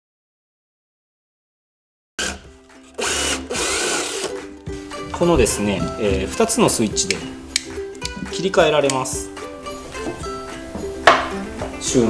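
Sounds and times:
electric drill boring into wood: 2.2 - 4.4
background music: 2.2 - 12.0.

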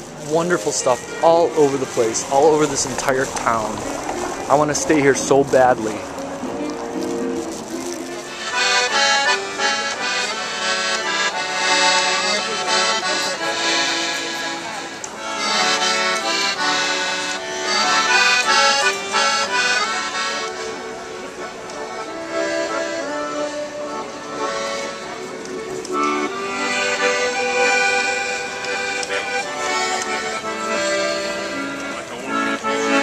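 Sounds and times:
accordion tune: 0.0 - 33.0.

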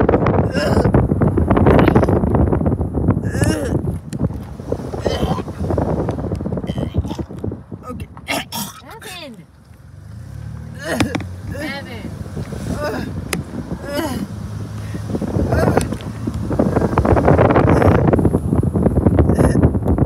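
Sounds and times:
wind buffeting microphone: 0.0 - 20.0
person giving wordless cries: 0.4 - 1.0, 5.0 - 5.6, 8.3 - 9.4, 10.8 - 13.2, 13.8 - 16.0.

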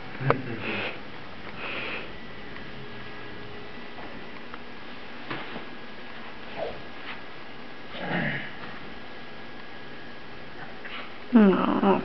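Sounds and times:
person sniffing: 0.6 - 1.0.

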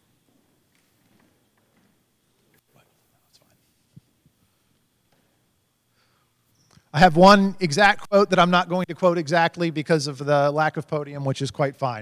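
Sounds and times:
faint whispering voices: 2.6 - 3.9.

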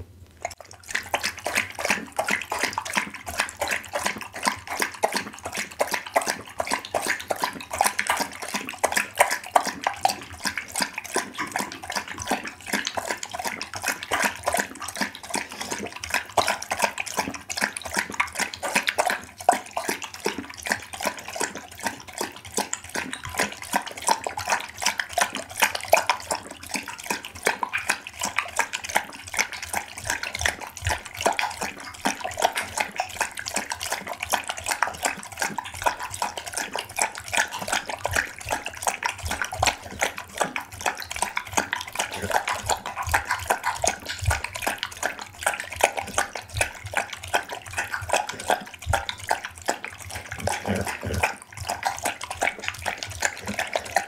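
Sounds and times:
dog lapping from glass bowl: 0.0 - 54.0.

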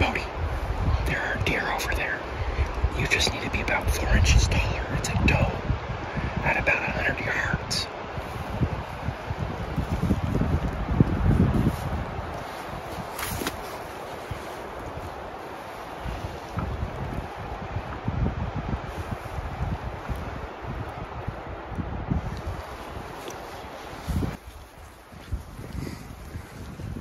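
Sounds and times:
wind buffeting microphone: 0.0 - 27.0
wind hissing through grass: 0.0 - 27.0.

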